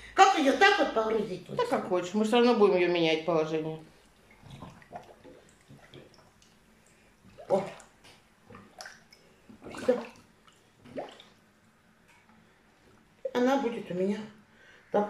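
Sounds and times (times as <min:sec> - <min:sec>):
person speaking: 0:00.0 - 0:03.9
water sloshing and dripping: 0:03.8 - 0:13.4.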